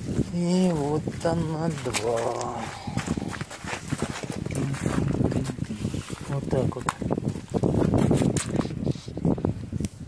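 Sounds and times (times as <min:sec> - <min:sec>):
footsteps on gravel: 0:00.1 - 0:08.8.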